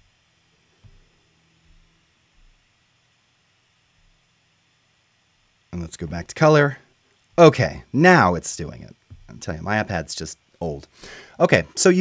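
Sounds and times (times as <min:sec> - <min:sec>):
soft low bumps: 0:09.1 - 0:09.4.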